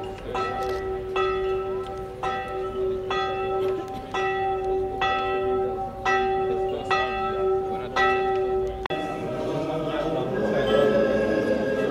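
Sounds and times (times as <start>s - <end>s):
church bell tolling: 0.0s - 11.9s.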